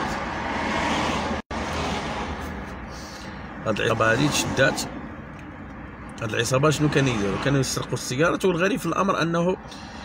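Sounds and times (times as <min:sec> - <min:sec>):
car and traffic noise: 0:00.0 - 0:10.0.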